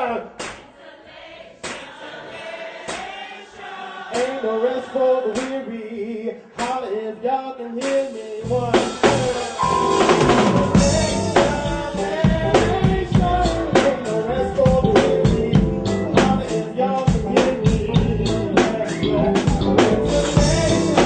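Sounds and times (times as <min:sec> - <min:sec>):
drum kit kick and snare: 0:07.8 - 0:16.5, 0:17.1 - 0:21.0
live band playing instrumental: 0:08.7 - 0:21.0.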